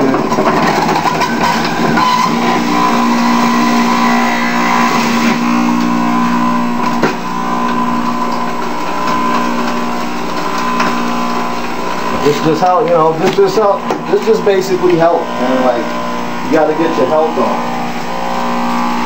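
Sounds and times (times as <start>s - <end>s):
juicer motor whirring: 0.0s - 19.0s.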